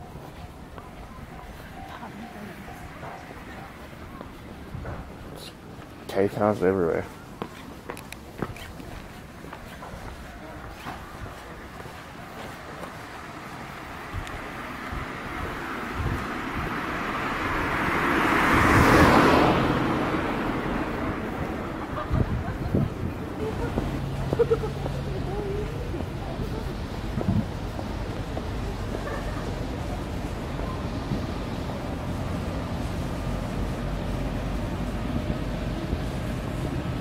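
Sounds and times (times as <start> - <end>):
car driving past: 13.8 - 37.0.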